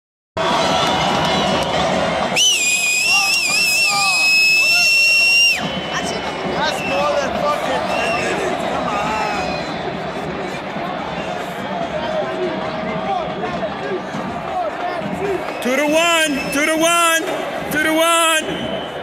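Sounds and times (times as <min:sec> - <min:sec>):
stadium crowd noise: 0:00.4 - 0:19.0
loud high whistle: 0:02.3 - 0:08.4, 0:15.7 - 0:16.8, 0:18.3 - 0:19.0.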